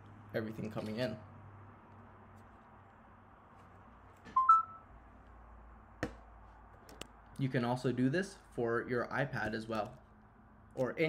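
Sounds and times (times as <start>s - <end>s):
two-note computer alert chime: 4.4s - 4.8s.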